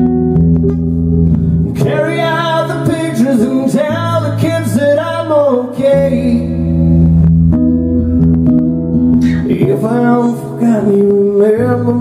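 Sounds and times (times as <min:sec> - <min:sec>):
acoustic guitar strumming: 0:00.0 - 0:12.0
man singing: 0:01.7 - 0:07.1, 0:09.2 - 0:12.0.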